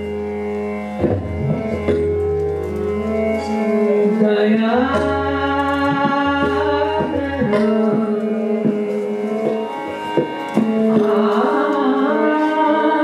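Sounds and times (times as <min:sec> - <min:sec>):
tabla strokes: 0:00.0 - 0:12.7
harmonium: 0:00.0 - 0:13.0
woman singing long held notes: 0:10.6 - 0:13.0.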